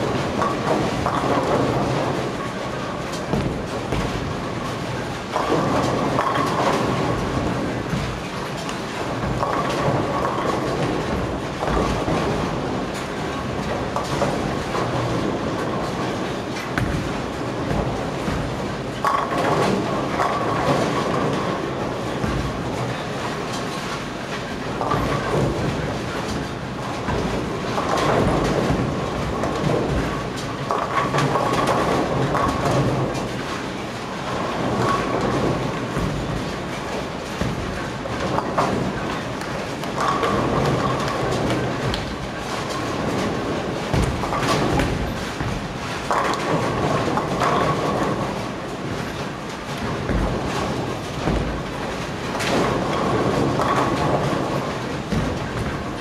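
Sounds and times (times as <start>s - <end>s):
bowling balls rolling: 0.0s - 56.0s.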